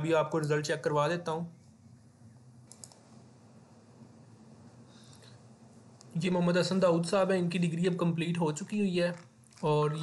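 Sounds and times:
low room hum: 0.0s - 10.0s
computer mouse clicks: 2.6s - 3.2s.

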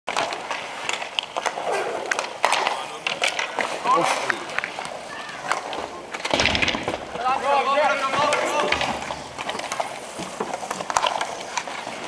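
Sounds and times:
hockey sticks clacking: 0.1s - 12.0s
skate wheels rolling on asphalt: 0.1s - 12.0s.

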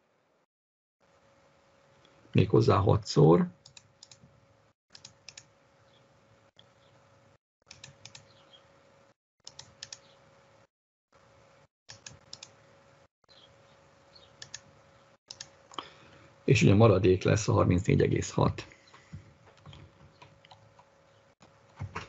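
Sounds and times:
computer mouse clicks: 3.7s - 4.2s, 4.9s - 5.5s, 7.7s - 8.3s, 9.4s - 10.1s, 11.9s - 12.6s, 14.4s - 14.7s, 15.3s - 15.9s.

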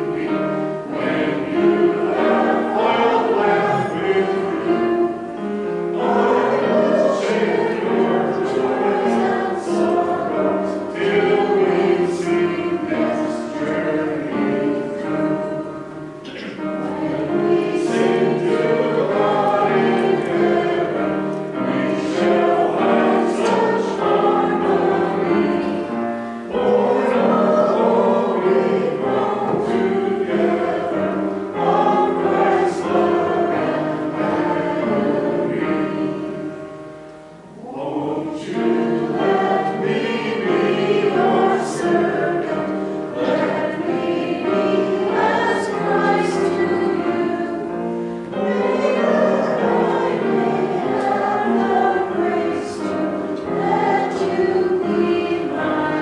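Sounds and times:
group singing a hymn: 0.0s - 56.0s.

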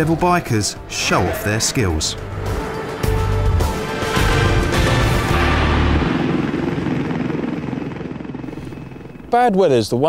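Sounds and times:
helicopter rotor beat: 0.0s - 10.0s.

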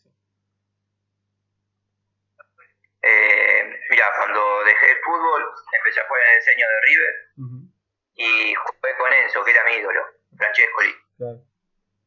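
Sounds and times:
man talking over video call: 3.0s - 11.4s.

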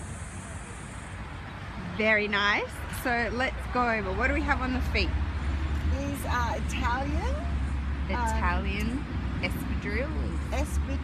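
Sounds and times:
distant traffic rumble: 0.0s - 11.0s.

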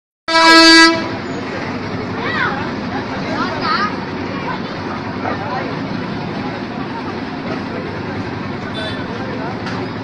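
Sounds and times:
vehicle horn toot: 0.3s - 1.2s, 8.7s - 9.1s
street noise: 0.3s - 10.0s.

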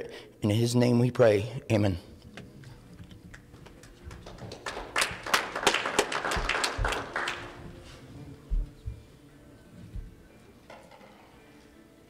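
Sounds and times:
congregation applauding: 3.3s - 7.8s.

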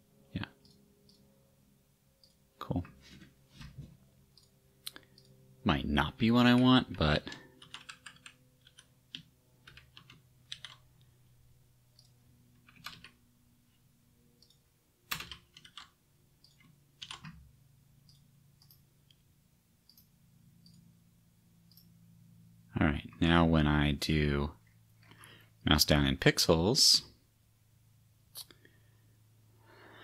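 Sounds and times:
faint low hum: 0.0s - 30.0s.

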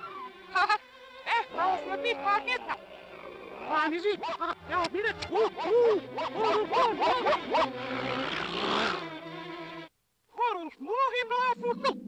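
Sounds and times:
cartoon vocal calls: 1.3s - 9.0s
cartoon dog growl: 1.5s - 9.0s.

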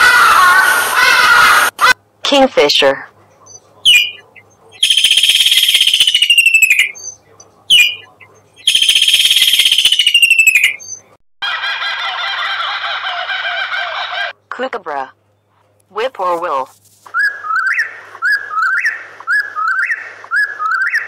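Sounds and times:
dense bird sound: 3.4s - 11.1s
kingfisher trilling call: 4.8s - 6.9s, 8.6s - 10.8s.

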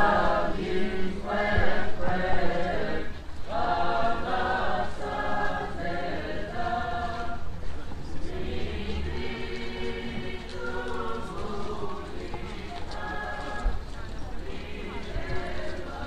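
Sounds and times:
choir chanting a hymn: 0.0s - 16.0s.

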